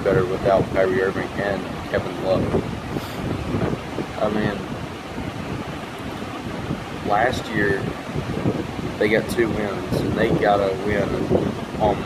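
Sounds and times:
wind rushing across microphone: 0.0 - 12.0.

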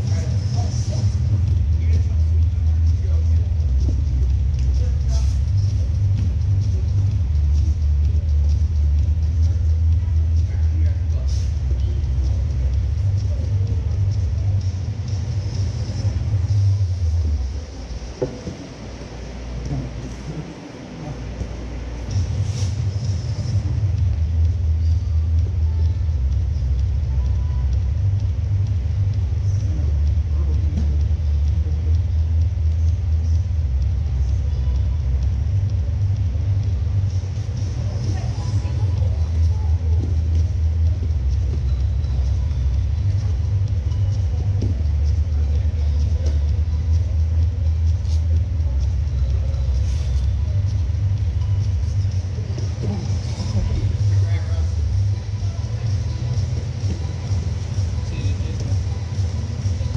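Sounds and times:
steady low rumble: 0.0 - 59.9.

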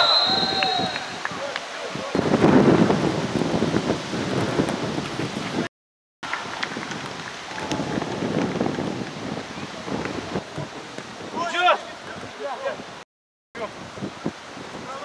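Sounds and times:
wind rumble on microphone: 0.0 - 5.7, 6.3 - 13.0, 13.6 - 15.0.

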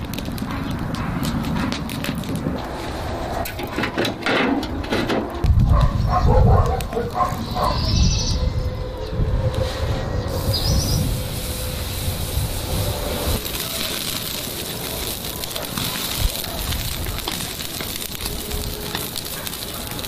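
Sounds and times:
charcoal fire crackling: 0.0 - 20.0
bird chirping: 7.3 - 9.1, 10.1 - 11.1.

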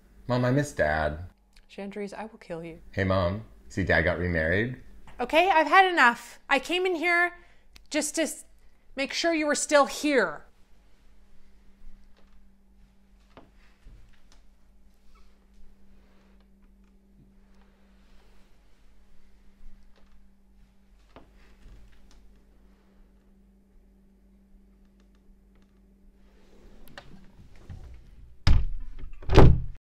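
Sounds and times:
steady low hum: 0.0 - 28.5
wooden door banging shut: 28.4 - 29.8.

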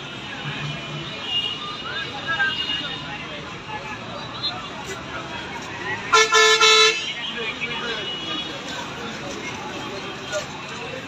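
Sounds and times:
crowd chatter: 0.0 - 11.0
road traffic: 0.0 - 11.0.

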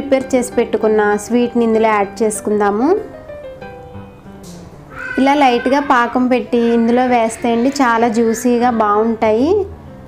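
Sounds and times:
woman speaking: 0.0 - 3.1, 5.2 - 9.7
faint background music: 0.0 - 10.0.

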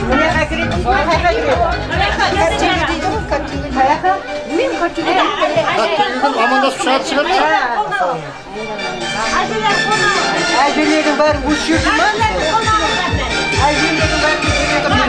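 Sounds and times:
background music with low beat: 0.0 - 6.0, 8.7 - 15.0
several people talking: 0.0 - 15.0.

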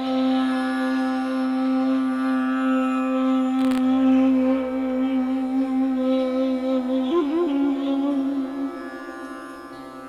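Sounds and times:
ney long low note: 0.0 - 10.0
tanpura drone: 0.0 - 10.0.

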